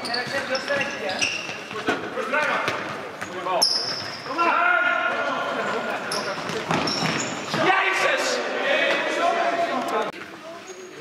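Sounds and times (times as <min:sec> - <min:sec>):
shoes squealing: 0:00.0 - 0:08.1, 0:10.4 - 0:11.0.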